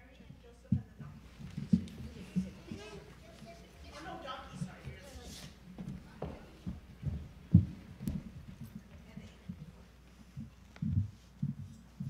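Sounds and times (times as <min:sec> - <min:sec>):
footsteps on stage floor: 0:00.4 - 0:12.0.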